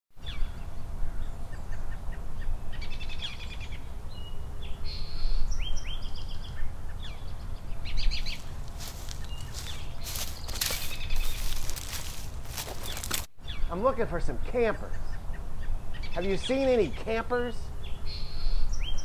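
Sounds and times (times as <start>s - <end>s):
birds chirping and trilling: 0.2s - 19.0s
low outdoor rumble: 6.6s - 13.3s.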